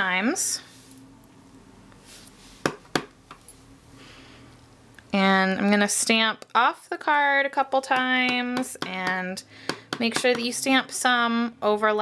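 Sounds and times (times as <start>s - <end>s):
stamp block tapping on surface: 7.9s - 10.5s.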